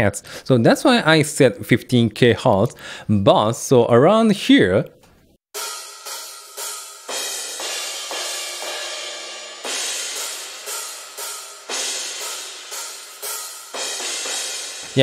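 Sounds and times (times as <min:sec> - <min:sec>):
cymbal crashes and hi-hats: 0:05.5 - 0:15.0.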